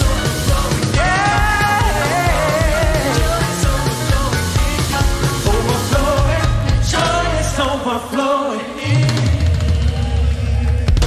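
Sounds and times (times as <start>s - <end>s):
person singing: 0.0s - 11.0s
worship band music: 0.0s - 11.0s.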